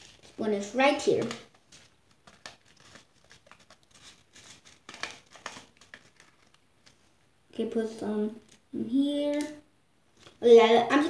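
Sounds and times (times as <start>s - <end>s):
packet crinkling: 0.0s - 0.4s, 1.0s - 7.0s.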